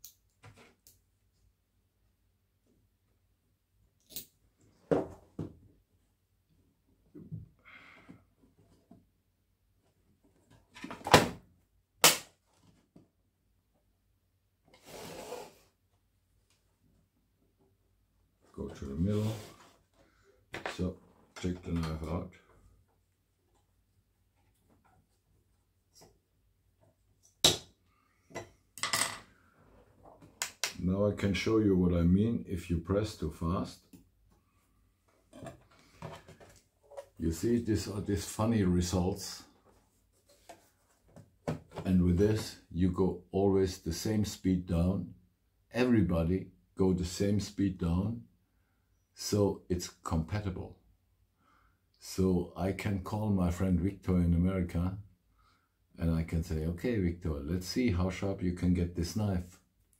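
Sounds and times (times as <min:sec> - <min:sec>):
brief scrape: 0:14.8 - 0:15.7, 0:19.2 - 0:19.8.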